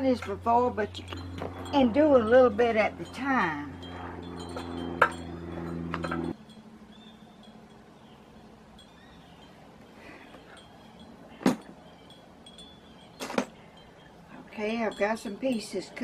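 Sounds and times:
steady low hum: 0.0 - 16.0
glass wind chimes tinkling: 0.9 - 16.0.

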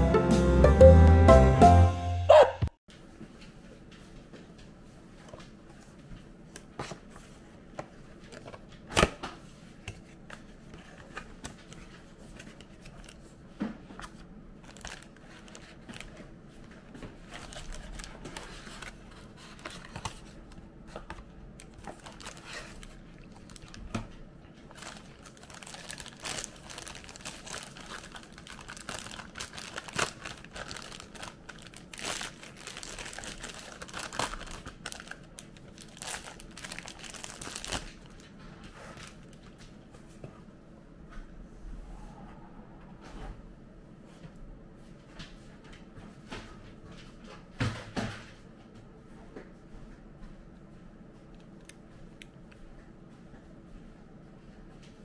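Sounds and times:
plastic bag crinkling: 14.6 - 20.4, 21.6 - 24.0, 24.6 - 39.4.

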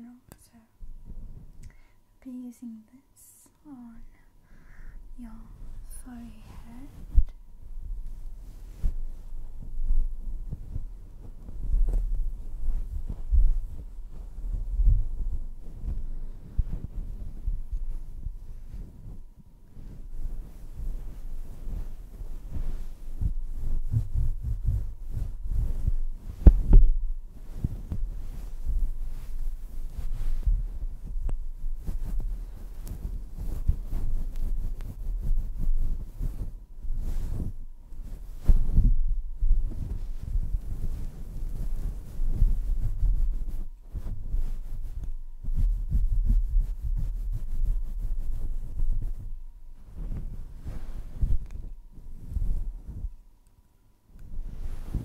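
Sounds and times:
fingertips rubbing furry microphone cover: 5.6 - 53.2, 54.2 - 55.0.

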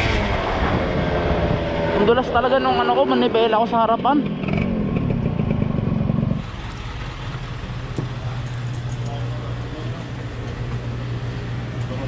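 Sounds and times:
drink coolers humming: 2.1 - 12.0.

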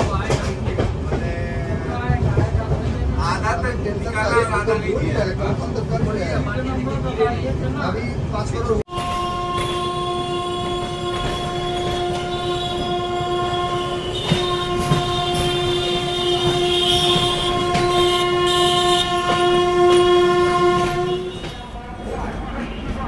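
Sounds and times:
train wheels rumbling and clicking: 0.0 - 23.0
train horn steady note: 8.9 - 21.6.

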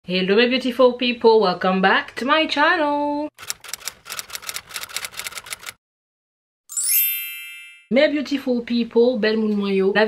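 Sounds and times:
typewriter key clacks: 3.4 - 5.8.

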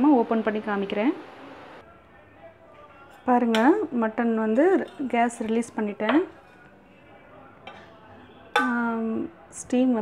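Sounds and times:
woman speaking: 0.0 - 1.2.

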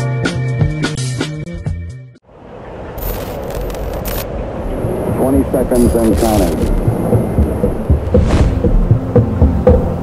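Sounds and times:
music: 0.0 - 2.2, 6.8 - 10.0
low rumbling noise: 2.3 - 10.0
person announcing: 5.2 - 6.7.

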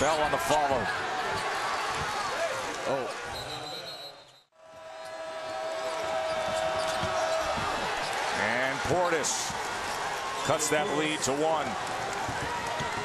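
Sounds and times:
arena crowd noise: 0.0 - 13.0
basketball play on hardwood court: 5.9 - 8.2.

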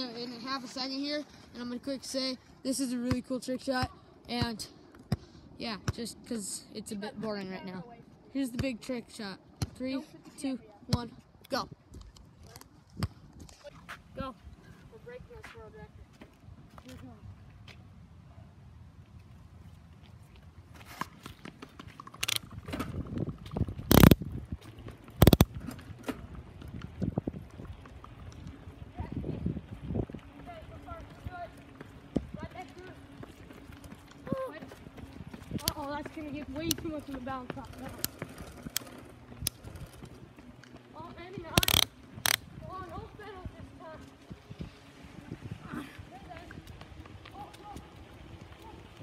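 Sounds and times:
running footsteps on asphalt: 7.1 - 18.2, 18.8 - 49.0.

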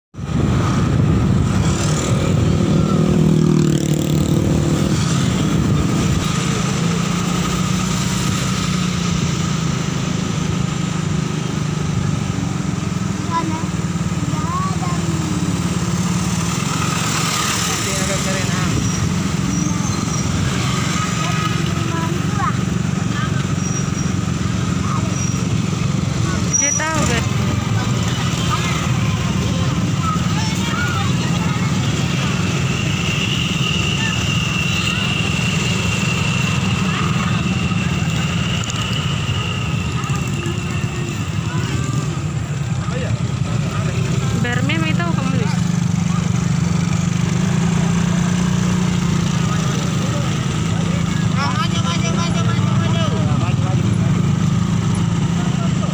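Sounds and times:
vehicle engines running: 0.2 - 55.9.

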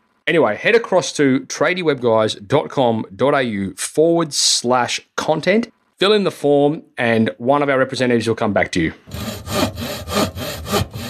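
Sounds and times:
saw cutting wood: 9.1 - 11.0.

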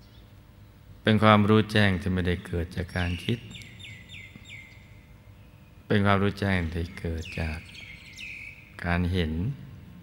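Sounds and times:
small bird chirping: 0.0 - 1.0, 2.3 - 5.9, 6.5 - 8.8.

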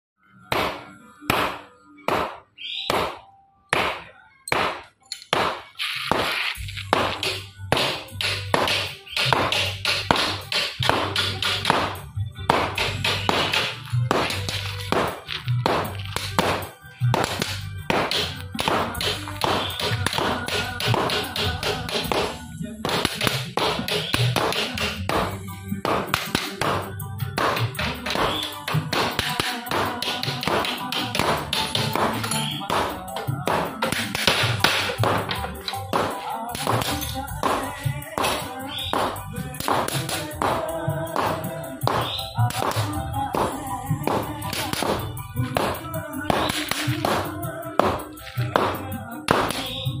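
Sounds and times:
background music: 0.2 - 50.0.

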